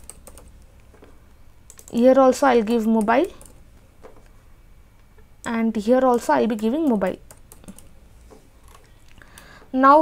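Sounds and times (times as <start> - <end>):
keyboard typing: 0.0 - 4.2, 5.4 - 7.9.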